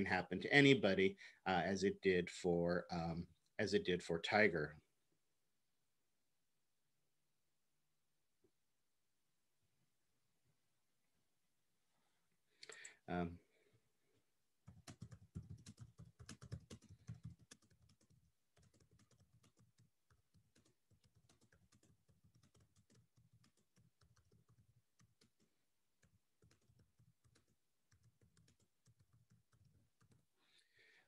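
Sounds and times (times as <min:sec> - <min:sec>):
computer keyboard typing: 0:14.6 - 0:30.3.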